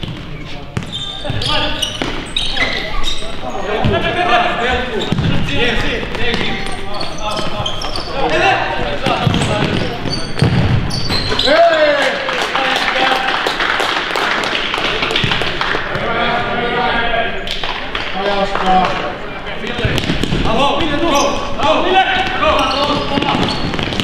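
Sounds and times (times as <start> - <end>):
shoe squeaks on court floor: 0.0 - 4.0, 4.7 - 5.5, 6.2 - 11.6, 21.0 - 24.0
ball kicks: 5.0 - 6.7, 9.0 - 10.9
people shouting and cheering: 11.3 - 13.3.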